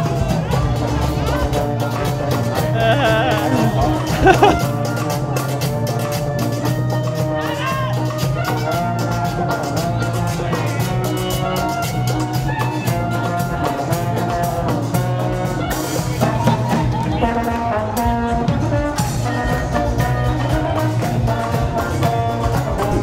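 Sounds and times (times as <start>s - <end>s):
cumbia band playing: 0.1s - 23.0s
brass melody: 2.7s - 5.0s.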